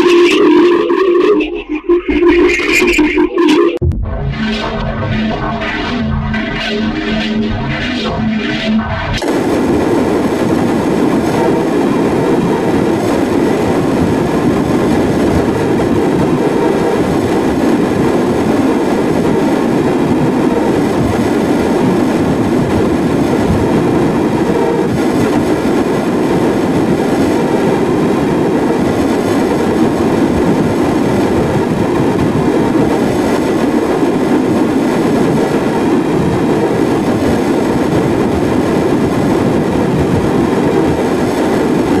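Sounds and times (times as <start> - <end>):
dense distorted noise: 0.0 - 42.0.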